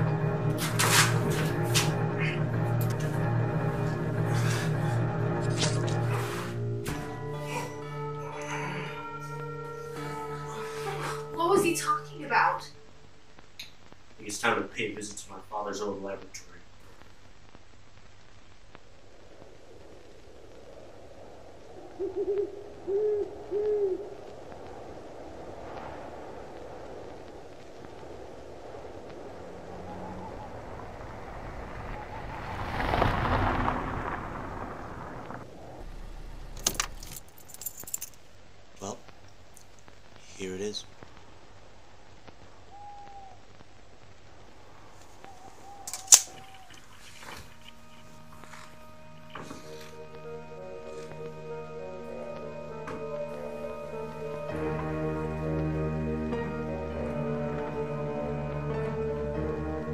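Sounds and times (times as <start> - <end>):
music: 0.0 - 12.9, 47.2 - 59.9
owl hooting: 21.8 - 24.4, 42.6 - 43.7, 45.0 - 48.7
low steady hum: 22.5 - 59.8.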